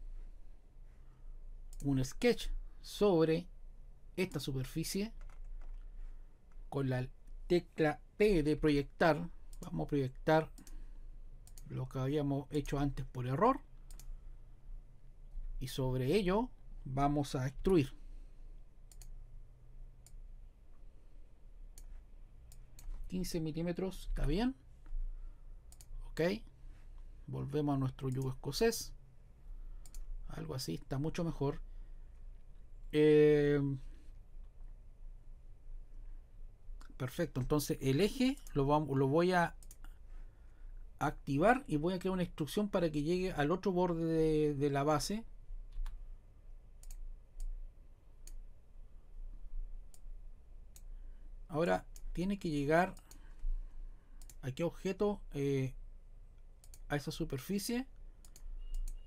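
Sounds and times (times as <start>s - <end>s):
faint low hum: 0.0s - 59.0s
computer mouse clicks: 1.7s - 1.9s, 5.2s - 5.9s, 10.5s - 10.8s, 11.4s - 11.7s, 13.8s - 14.2s, 18.9s - 19.2s, 21.7s - 23.1s, 25.7s - 26.0s, 28.0s - 28.4s, 29.8s - 30.1s, 39.5s - 40.0s, 45.7s - 46.0s, 46.8s - 47.6s, 49.9s - 50.1s, 54.2s - 54.4s, 56.4s - 56.9s, 58.0s - 59.0s.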